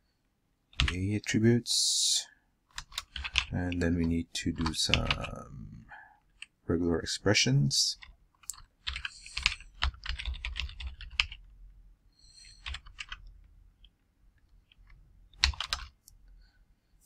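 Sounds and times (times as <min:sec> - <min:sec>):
typing on computer keyboard: 0:00.7 - 0:01.0, 0:02.7 - 0:03.6, 0:04.6 - 0:05.4, 0:08.0 - 0:11.5, 0:12.4 - 0:13.9, 0:14.6 - 0:16.0.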